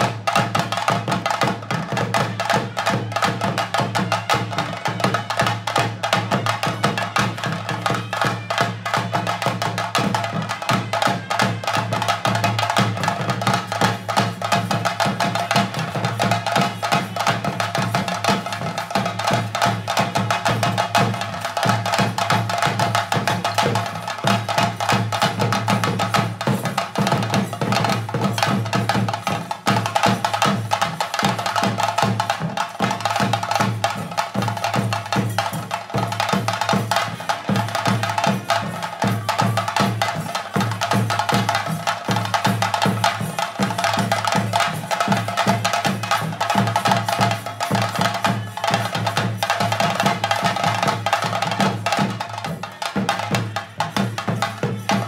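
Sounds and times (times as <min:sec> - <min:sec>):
drums beaten fast: 0:00.0 - 0:55.0.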